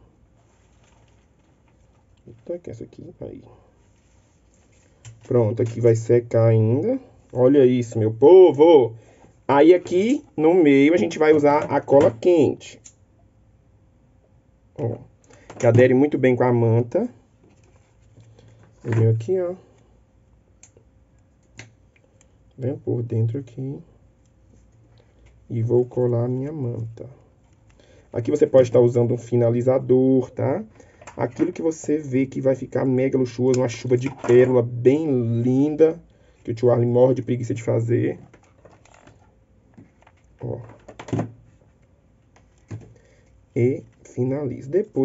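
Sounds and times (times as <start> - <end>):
person speaking: 2.1 - 12.9, 14.7 - 17.2, 18.8 - 19.9, 22.6 - 24.0, 25.5 - 27.3, 28.1 - 39.0, 40.1 - 41.0, 43.5 - 45.0.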